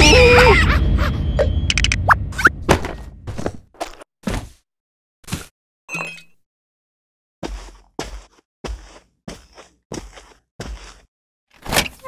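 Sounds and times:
heavy footsteps: 0:07.4 - 0:11.1.

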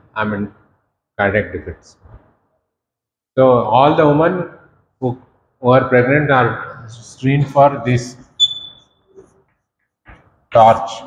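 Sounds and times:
chalk squeaking on blackboard: 0:08.4 - 0:09.4.

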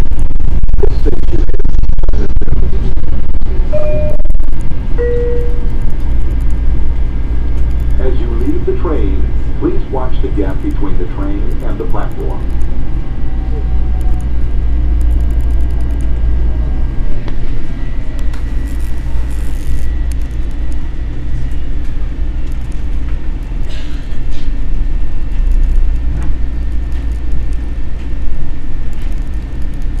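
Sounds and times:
falling whine: 0:00.0 - 0:30.0
train interior rumble: 0:00.0 - 0:30.0
faint high tone: 0:03.7 - 0:04.4, 0:05.0 - 0:05.7.

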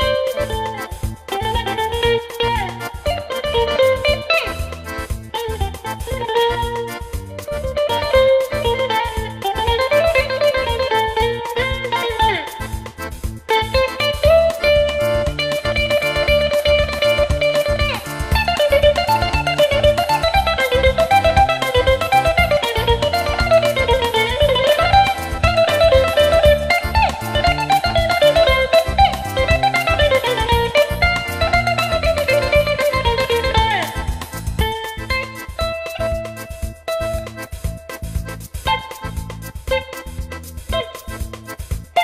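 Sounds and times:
bouzouki melody: 0:00.0 - 0:42.0
steady low beat: 0:00.0 - 0:42.0.

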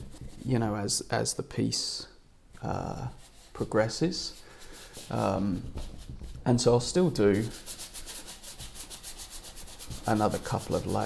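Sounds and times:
paintbrush scrubbing on canvas: 0:02.9 - 0:11.0.

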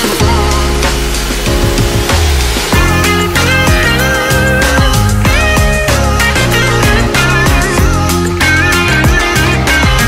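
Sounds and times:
tropical house music: 0:00.0 - 0:10.0.

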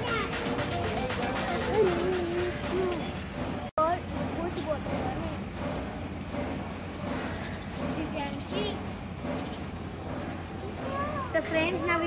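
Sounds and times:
children's voices: 0:00.0 - 0:00.6, 0:10.6 - 0:12.0.

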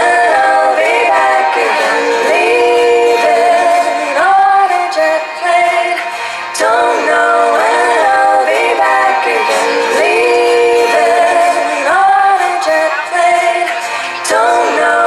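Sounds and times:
woman singing in vocal harmony: 0:00.0 - 0:15.0.

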